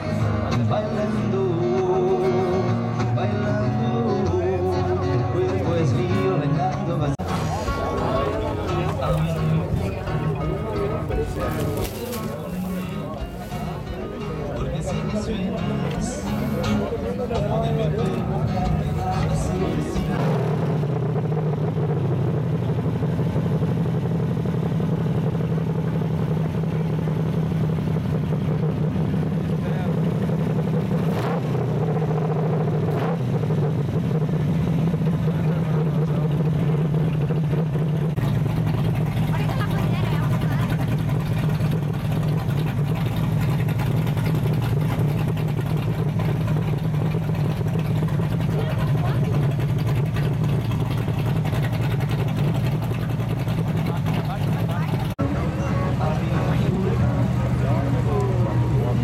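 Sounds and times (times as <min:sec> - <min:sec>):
car engine idling: 0:00.0 - 0:59.0
deeper rumble: 0:00.0 - 0:59.0.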